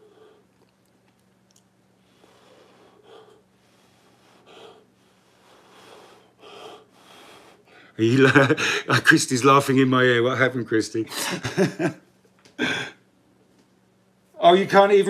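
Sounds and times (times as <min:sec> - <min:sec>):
soft puffs of breath: 0:02.0 - 0:07.9.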